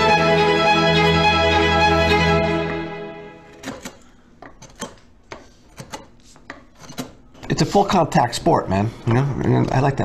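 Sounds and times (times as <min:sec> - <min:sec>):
string music: 0:00.0 - 0:03.8.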